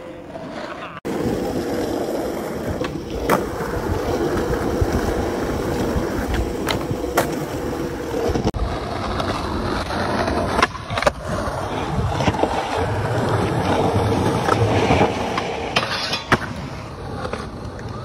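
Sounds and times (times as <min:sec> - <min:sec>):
skateboard tail clacks: 0:00.0 - 0:18.0
skateboard wheels rolling on concrete: 0:00.0 - 0:18.0.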